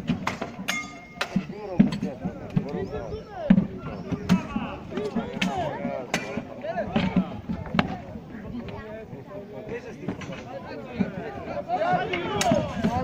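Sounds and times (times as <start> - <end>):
weapons striking shields: 0.0 - 2.7
many voices shouting: 11.0 - 13.0.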